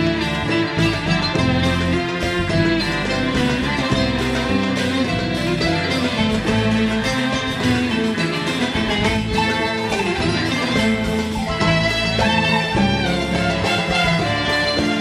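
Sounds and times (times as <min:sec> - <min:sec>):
plucked string instrumental music: 0:00.0 - 0:15.0.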